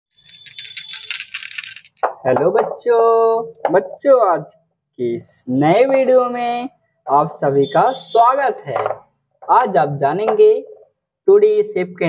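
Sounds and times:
plastic paint jars clinking: 0.3 - 2.2.

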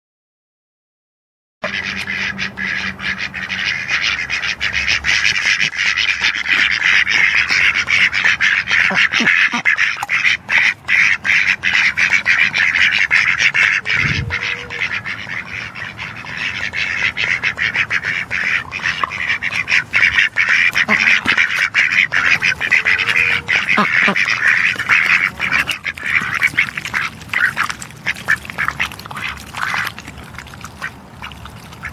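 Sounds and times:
ducks quacking: 1.6 - 31.9.

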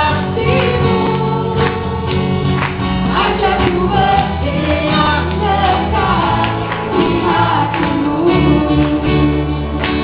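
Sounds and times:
group singing worship song: 0.0 - 10.0.

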